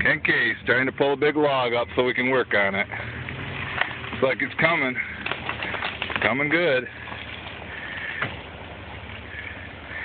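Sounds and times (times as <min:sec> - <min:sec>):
truck engine running under load: 0:00.0 - 0:10.0.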